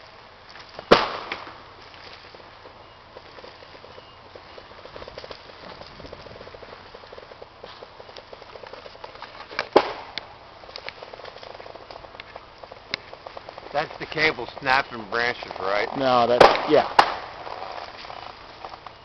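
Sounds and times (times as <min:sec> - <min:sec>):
loud crack: 0:00.9 - 0:01.7, 0:09.5 - 0:14.8, 0:16.2 - 0:18.2
branches and twigs snapping: 0:08.0 - 0:13.7
cable dragging through brush: 0:10.8 - 0:16.4.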